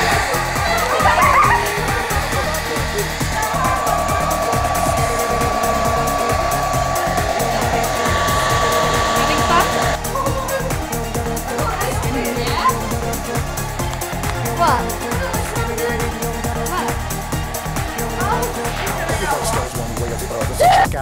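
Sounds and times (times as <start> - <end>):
hair dryer blowing: 0.0 - 20.9
high whine: 0.0 - 20.9
dance-pop music: 0.0 - 21.0.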